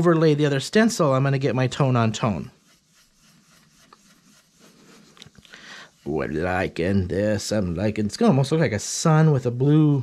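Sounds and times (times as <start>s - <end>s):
ink brush swishing on cardstock: 1.5s - 7.6s.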